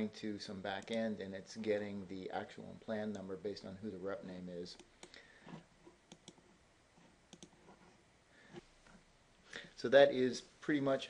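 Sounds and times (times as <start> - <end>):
computer mouse clicks: 6.1 - 6.5, 7.3 - 7.6.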